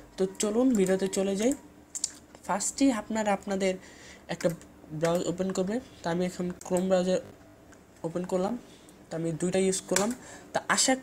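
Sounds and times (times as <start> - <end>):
person talking: 0.2 - 7.4, 8.0 - 11.0.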